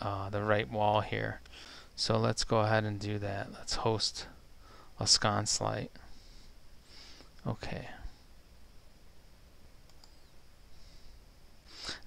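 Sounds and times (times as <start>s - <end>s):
low room hum: 0.0s - 12.0s
computer mouse clicks: 9.8s - 10.3s.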